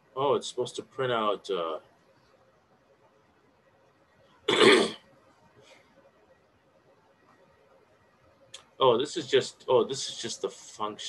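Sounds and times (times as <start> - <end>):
man coughing: 4.5 - 5.0.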